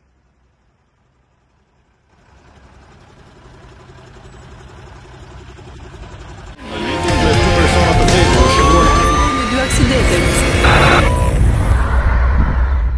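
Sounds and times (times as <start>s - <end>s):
truck engine running: 0.0s - 11.9s
loud music: 6.6s - 11.1s.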